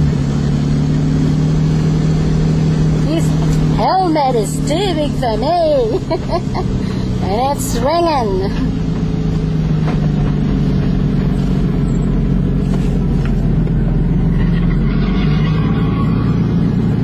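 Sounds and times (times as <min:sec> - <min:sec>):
car engine running inside cabin: 0:00.0 - 0:17.0.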